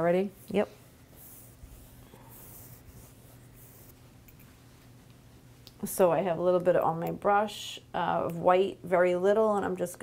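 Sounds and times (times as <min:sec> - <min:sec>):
steady low hum: 0:00.0 - 0:09.9
paintbrush swishing on canvas: 0:00.3 - 0:05.0.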